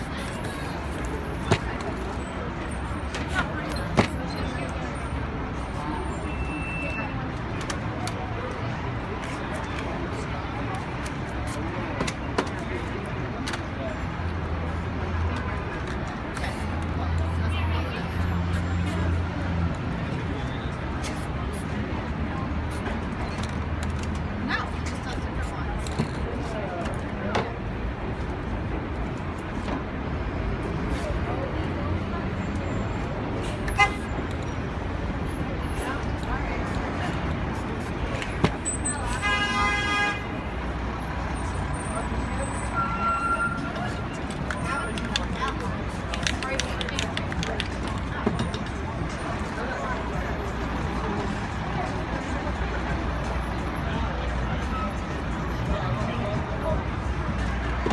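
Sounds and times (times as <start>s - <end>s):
traffic: 0.0s - 57.9s
vehicle horn: 33.7s - 34.1s, 39.1s - 40.3s.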